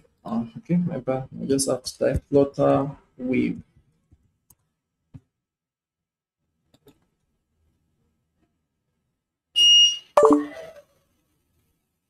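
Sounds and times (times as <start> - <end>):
high electronic beep: 9.6 - 10.8
descending electronic tones: 10.2 - 10.8.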